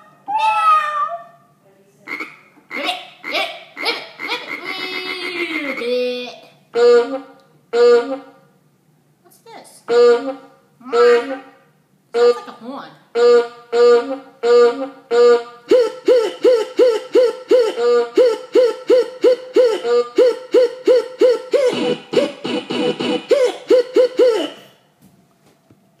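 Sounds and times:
electronic keyboard horn notes: 6.8s - 8.3s, 9.9s - 11.5s, 13.2s - 18.2s, 21.6s - 24.6s.

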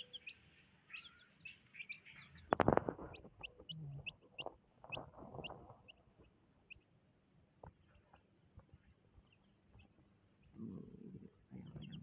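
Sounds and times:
chicks peeping: 0.0s - 6.9s, 7.6s - 12.0s.

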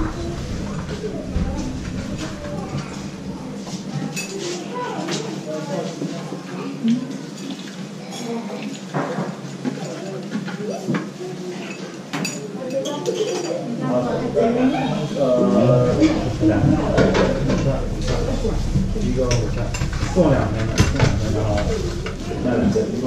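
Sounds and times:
voices talking in background: 0.0s - 23.0s.

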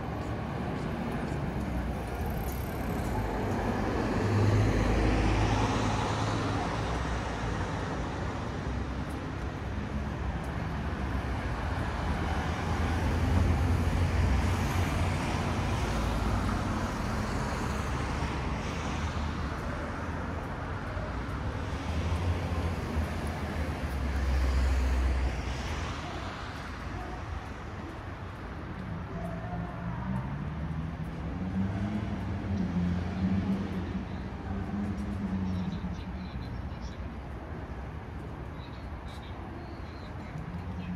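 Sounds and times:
vehicles passing with tyre noise: 0.0s - 40.9s.

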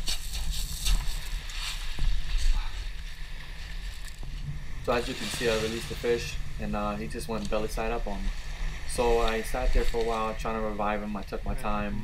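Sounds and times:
wind rumbling on microphone: 0.0s - 12.0s
waves washing on pebbles: 4.4s - 11.1s.

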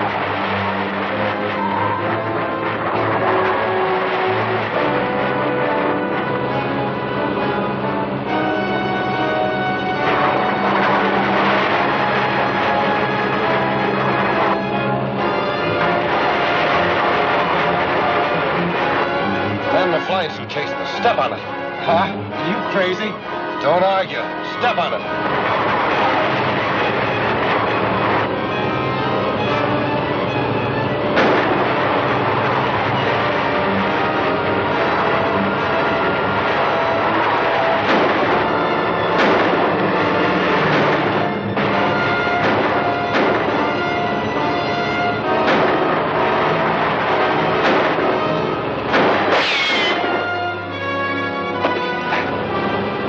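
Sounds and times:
orchestral music: 0.0s - 53.0s.

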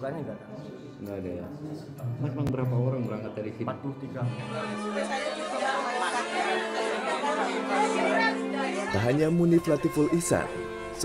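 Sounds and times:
people crying and talking: 4.0s - 11.0s.

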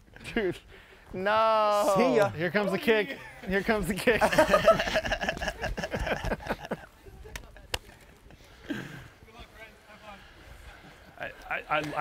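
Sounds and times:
men laughing and talking: 0.0s - 12.0s.

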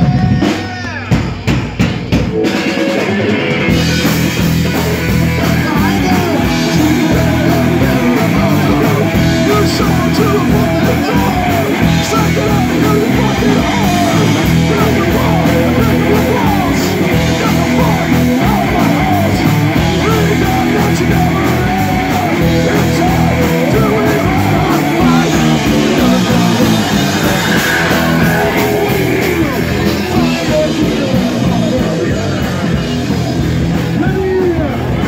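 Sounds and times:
drums: 0.0s - 35.0s
electric bass: 0.0s - 35.0s
electric guitar: 0.0s - 35.0s
live rock band playing: 0.0s - 35.0s
person singing into a microphone: 5.2s - 33.1s.

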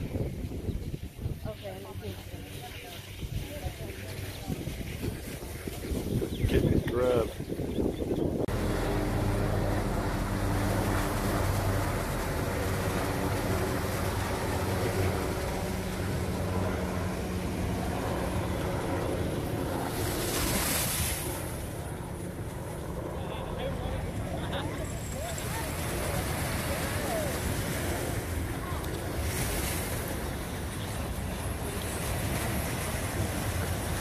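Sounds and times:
rush of surf or wind: 0.0s - 1.6s, 3.1s - 23.2s, 24.1s - 34.0s
engine drone: 8.4s - 34.0s
ocean surf washing on beach: 8.5s - 22.7s, 24.1s - 34.0s.

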